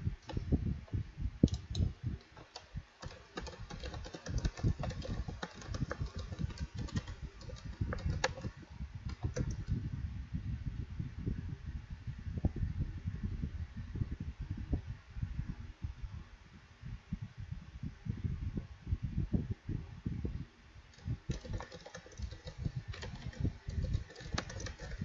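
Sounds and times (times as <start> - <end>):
computer keyboard typing: 2.4 - 8.5, 9.1 - 9.7, 21.0 - 25.0.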